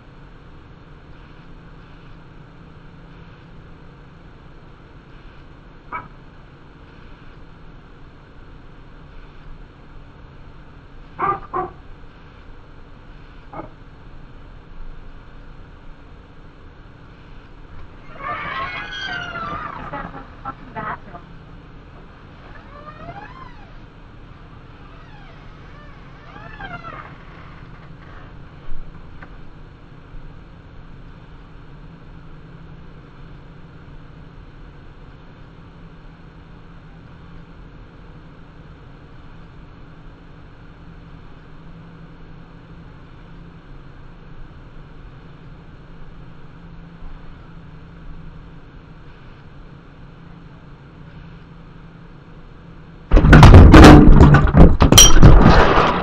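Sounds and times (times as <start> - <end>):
steady low hum: 0.0 - 56.0
raccoon high calls: 5.9 - 6.2, 11.2 - 11.9, 13.5 - 13.8, 17.9 - 21.4, 22.4 - 23.8, 24.7 - 27.4.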